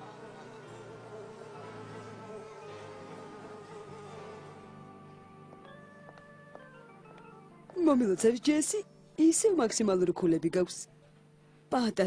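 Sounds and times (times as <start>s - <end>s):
faint background music: 0.0s - 12.0s.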